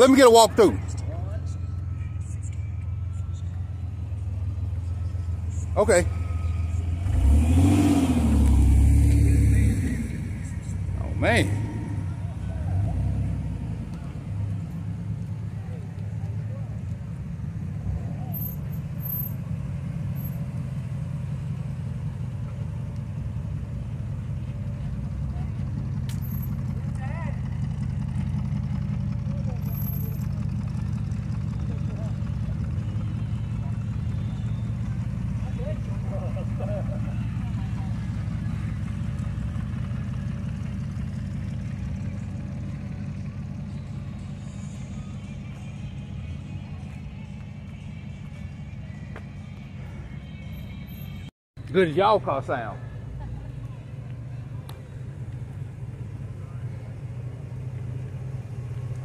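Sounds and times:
pickup truck engine idling: 0:10.2 - 0:46.2.

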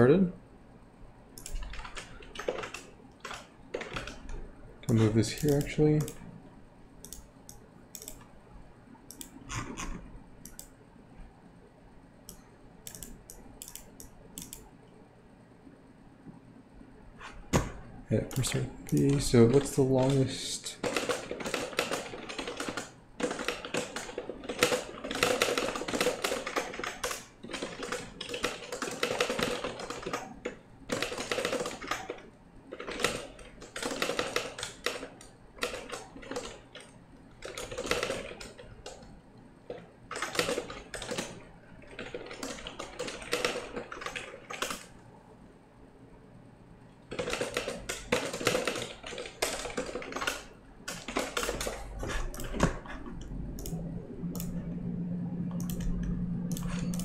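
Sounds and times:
fast typing on computer keyboard: 0:01.4 - 0:06.2, 0:18.2 - 0:39.1, 0:39.7 - 0:44.9, 0:47.1 - 0:54.6.

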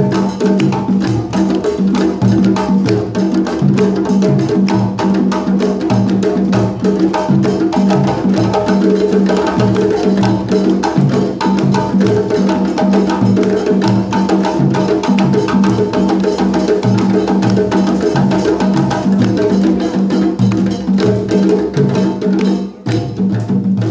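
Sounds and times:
hand drums playing together: 0:00.0 - 0:23.9.

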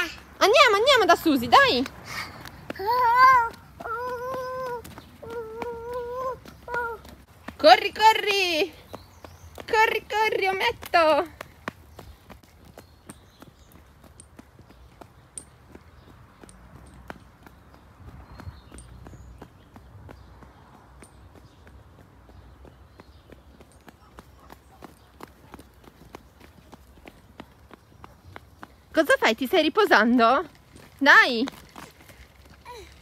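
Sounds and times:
footsteps on asphalt: 0:00.0 - 0:33.0.

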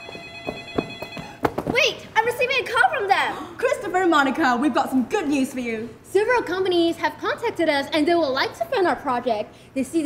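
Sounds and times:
video call ringtone: 0:00.0 - 0:01.4.

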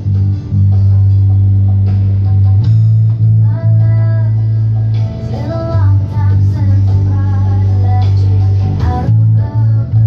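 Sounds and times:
electric bass guitar plucking: 0:00.0 - 0:10.0
pop backing track: 0:00.0 - 0:10.0
woman singing: 0:03.4 - 0:10.0.

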